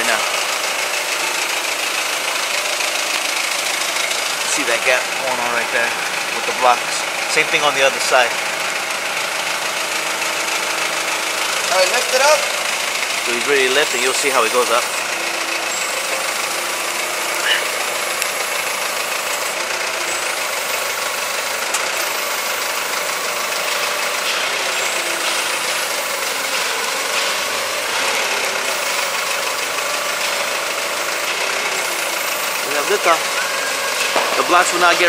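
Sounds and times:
forklift engine running: 0:00.0 - 0:35.0.

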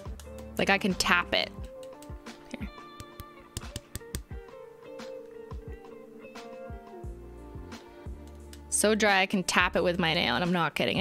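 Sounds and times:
background music: 0:00.0 - 0:11.0
fingernail tapping: 0:02.9 - 0:04.3.

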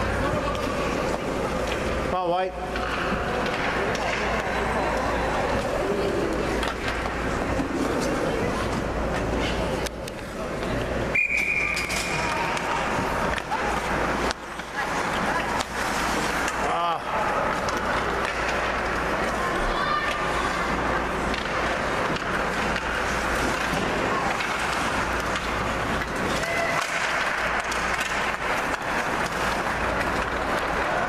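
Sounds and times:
skates and sticks scraping ice: 0:00.0 - 0:31.0
spectators talking: 0:00.0 - 0:31.0.

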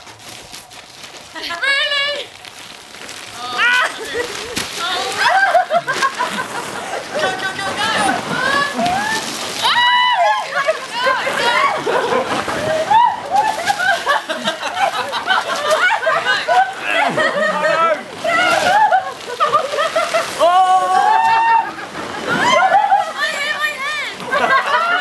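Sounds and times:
water splashing on plastic sheet: 0:00.0 - 0:25.0
people shouting excitedly: 0:07.2 - 0:12.0, 0:20.3 - 0:25.0.

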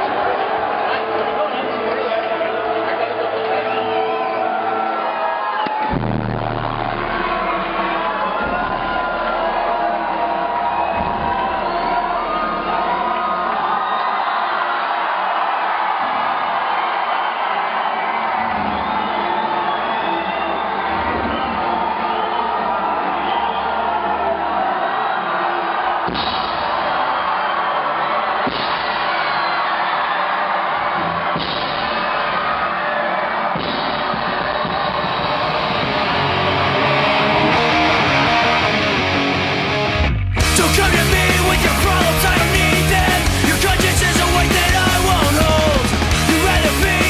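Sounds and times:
crowd cheering and whooping: 0:00.0 - 0:47.0
loud music with deep bass: 0:05.9 - 0:13.7, 0:33.3 - 0:47.0.

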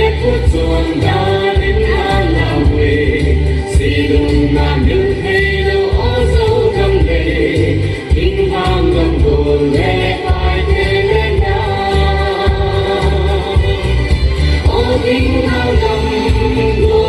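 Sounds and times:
group singing folk song: 0:00.0 - 0:17.0
pulsing low accompaniment: 0:00.0 - 0:17.0.

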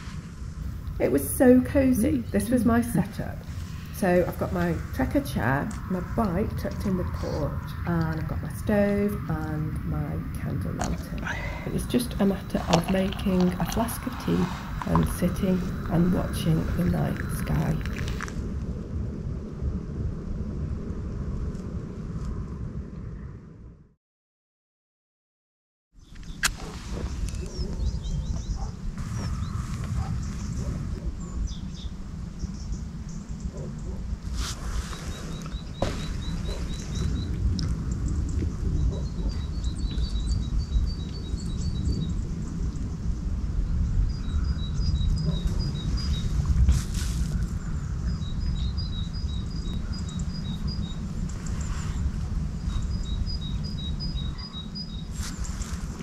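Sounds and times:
loud steady low rumble: 0:00.0 - 0:23.0
birds singing high pips: 0:26.0 - 0:34.0, 0:34.8 - 0:55.8.

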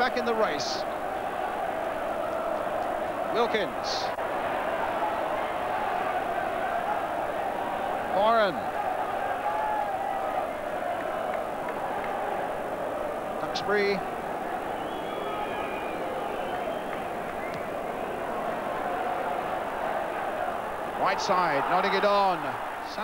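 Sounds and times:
commentator speaking: 0:00.0 - 0:00.9, 0:03.3 - 0:04.2, 0:21.0 - 0:23.0
stadium crowd noise: 0:00.0 - 0:23.0.

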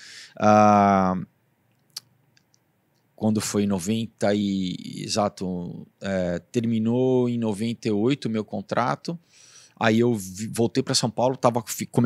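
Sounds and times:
man saying ah: 0:00.4 - 0:01.2.

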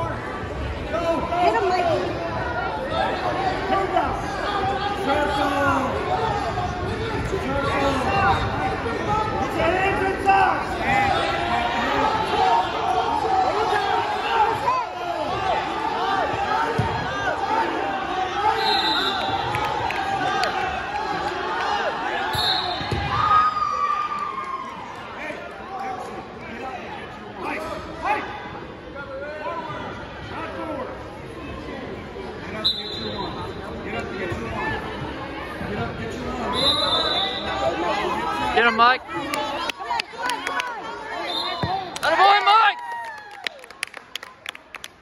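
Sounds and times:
spectators shouting in gymnasium: 0:00.0 - 0:43.6.

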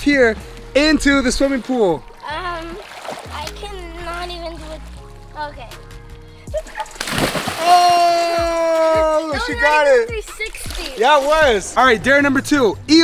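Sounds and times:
background music: 0:00.0 - 0:13.0
splash into swimming pool: 0:02.8 - 0:03.6, 0:06.7 - 0:08.4.

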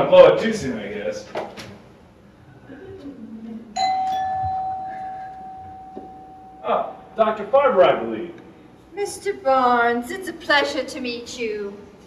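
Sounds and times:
doorbell chime: 0:03.8 - 0:06.7.

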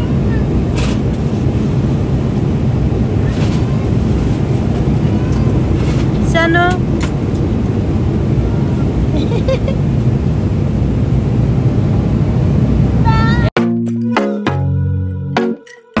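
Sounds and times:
airliner cabin noise: 0:00.0 - 0:13.5
child's voice: 0:13.0 - 0:13.5.

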